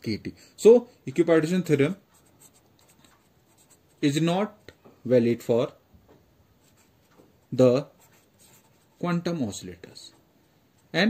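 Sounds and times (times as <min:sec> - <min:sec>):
marker scratching on paper: 0:02.0 - 0:04.6, 0:06.6 - 0:09.4.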